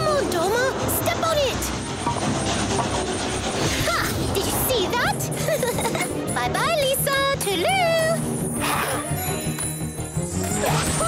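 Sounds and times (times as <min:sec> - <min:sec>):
cartoon background music: 0:00.0 - 0:11.0.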